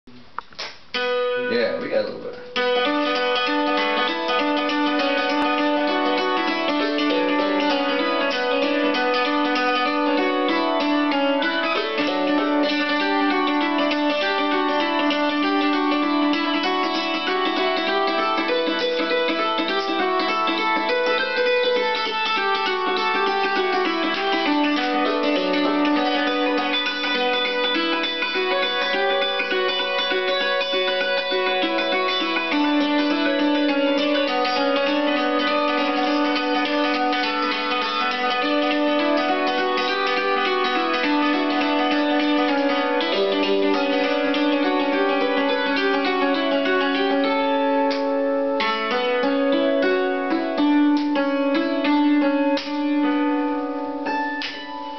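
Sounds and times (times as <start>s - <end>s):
hammered dulcimer tune: 1.0s - 54.9s.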